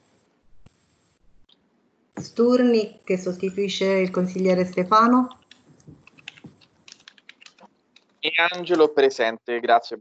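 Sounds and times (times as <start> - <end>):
computer keyboard typing: 5.2 - 8.2.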